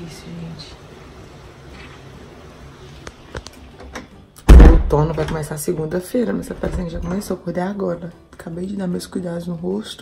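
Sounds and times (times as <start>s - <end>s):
loud thump: 4.5s - 5.4s
woman speaking: 4.7s - 10.0s.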